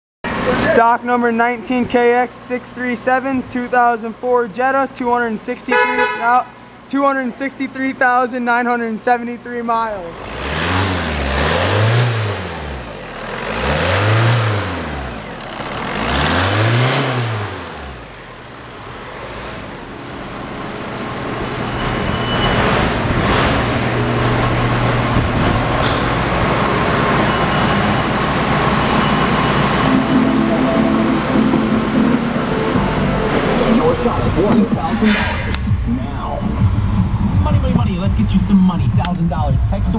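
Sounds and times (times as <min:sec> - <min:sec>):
diesel engine revving and idling: 0:00.3 - 0:01.3, 0:09.3 - 0:39.9.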